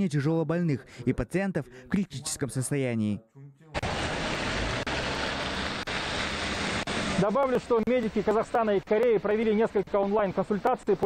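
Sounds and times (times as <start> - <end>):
steady rushing noise: 3.8 - 11.0.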